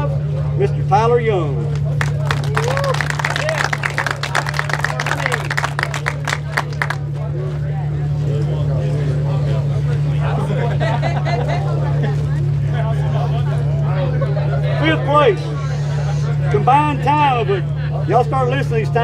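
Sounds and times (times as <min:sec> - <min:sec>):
crowd chatter: 0:00.0 - 0:19.0
crowd applauding: 0:01.8 - 0:07.2.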